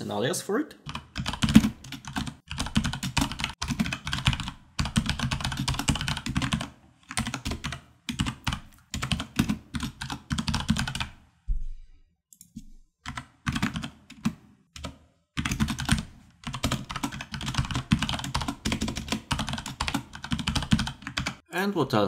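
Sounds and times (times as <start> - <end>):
fast typing on computer keyboard: 0.9 - 11.2, 13.1 - 21.4.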